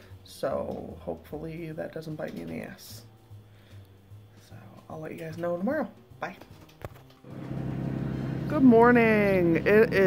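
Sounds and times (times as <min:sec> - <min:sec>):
steady low hum: 0:07.3 - 0:10.0.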